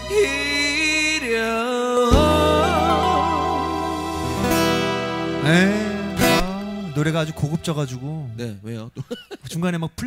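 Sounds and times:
acoustic guitar: 0.0 - 7.8
sharp guitar strum: 2.1 - 6.8.

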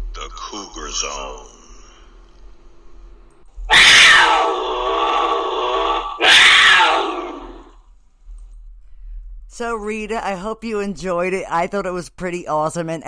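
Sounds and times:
big cat snarling: 3.7 - 7.8.

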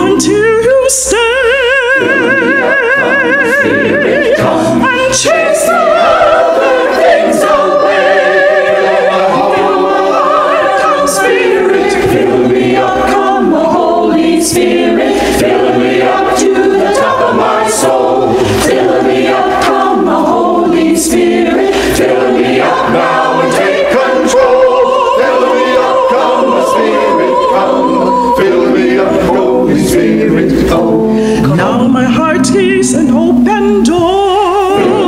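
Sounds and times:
mixed choir singing: 0.0 - 35.0.

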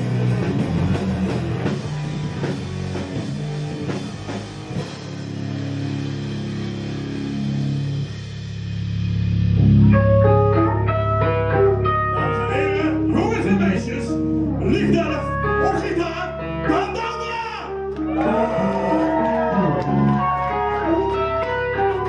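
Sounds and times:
distorted guitars: 0.0 - 22.0
drums: 0.0 - 22.0
low guitar and bass notes: 0.0 - 22.0
guitar single-note line: 9.6 - 18.8.

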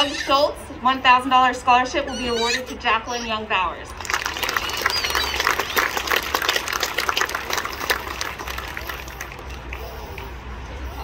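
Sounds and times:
audience applauding: 4.0 - 10.3.

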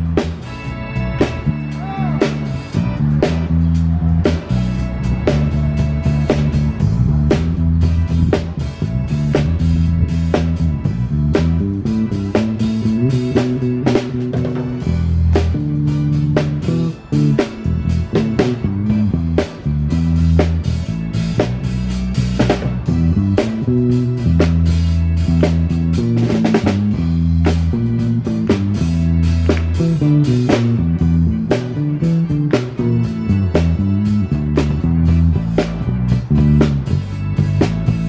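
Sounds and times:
bass line of held low notes: 0.0 - 38.0
drum kit: 0.0 - 38.0
electric guitar: 0.0 - 38.0.

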